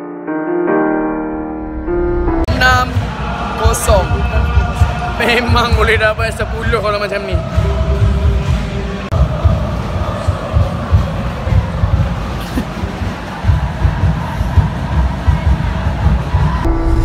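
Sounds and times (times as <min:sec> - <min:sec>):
music with sustained notes: 0:00.0 - 0:03.3
stadium crowd: 0:02.5 - 0:17.0.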